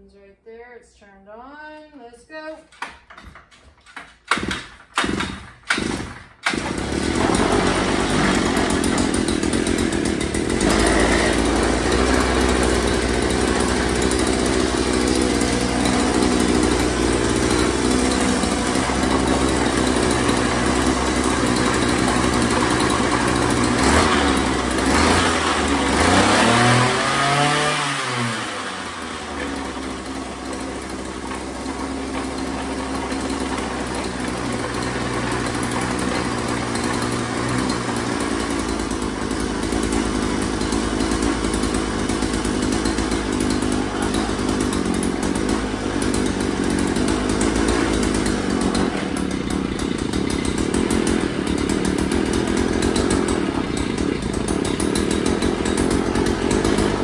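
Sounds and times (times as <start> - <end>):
starter cord pulls: 2.6 - 57.0
two-stroke auger engine running: 2.7 - 57.0.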